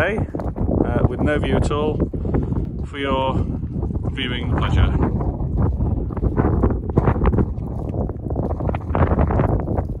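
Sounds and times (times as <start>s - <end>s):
wind buffeting microphone: 0.0s - 10.0s
knocks and crackles: 0.2s - 1.4s, 3.5s - 10.0s.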